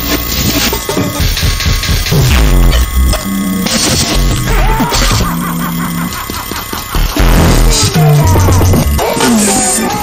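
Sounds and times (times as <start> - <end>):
low pulsing buzzing tone: 0.0 - 9.3.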